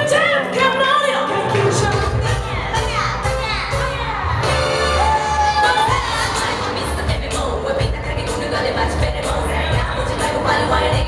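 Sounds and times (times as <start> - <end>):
dance music with heavy bass beat: 1.4 - 11.0.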